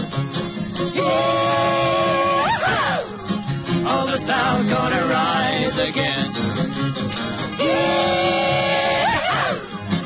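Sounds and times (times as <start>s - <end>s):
country song with plucked guitar: 0.0s - 10.0s
voices yelling a long held yee: 7.6s - 9.6s.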